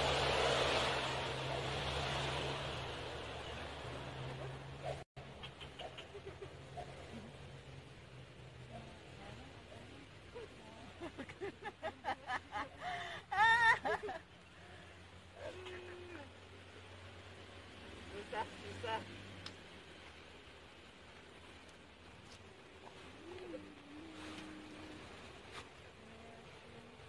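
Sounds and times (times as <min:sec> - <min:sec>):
bird cooing: 0:04.8 - 0:07.3, 0:23.0 - 0:25.2.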